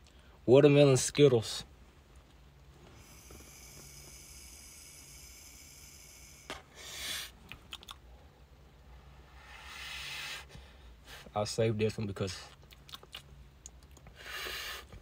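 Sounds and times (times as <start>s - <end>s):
breathy exhale: 2.9s - 7.4s, 9.1s - 11.3s, 14.1s - 15.0s
vape pen hiss: 3.0s - 7.4s.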